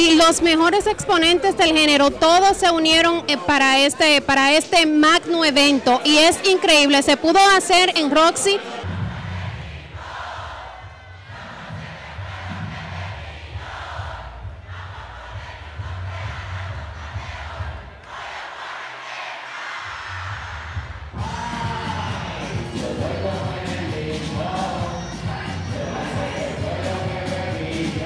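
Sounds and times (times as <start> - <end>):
crowd cheering and shouting: 0.0 - 28.0
person singing: 21.2 - 28.0.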